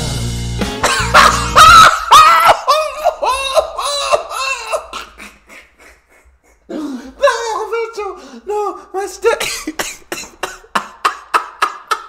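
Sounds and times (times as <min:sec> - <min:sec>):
man laughing hard: 0:00.8 - 0:08.1, 0:09.4 - 0:12.0.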